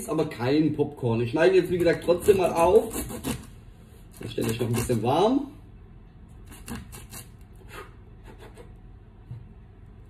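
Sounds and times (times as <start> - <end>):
knife cutting corn cob: 1.7 - 3.5, 4.1 - 5.1, 6.4 - 8.6.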